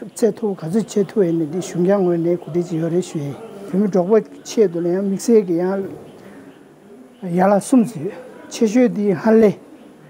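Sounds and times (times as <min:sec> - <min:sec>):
man talking: 0:00.0 - 0:06.0, 0:07.2 - 0:09.7.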